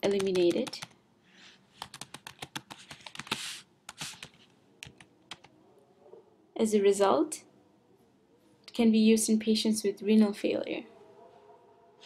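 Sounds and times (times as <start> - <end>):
typing on keyboard: 0.0 - 1.0, 1.8 - 5.5.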